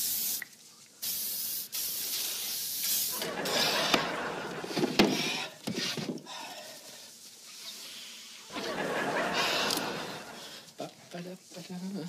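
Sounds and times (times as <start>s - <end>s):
aerosol can spraying: 0.0s - 4.2s.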